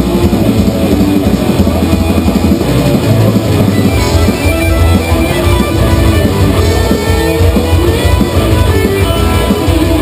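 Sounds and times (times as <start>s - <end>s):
drum kit: 0.0s - 10.0s
electric guitars: 0.0s - 10.0s.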